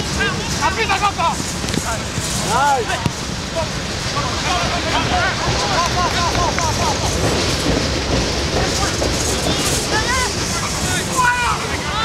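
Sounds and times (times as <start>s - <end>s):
voices calling out: 0.0s - 12.0s
wind rumbling on microphone: 0.0s - 12.0s.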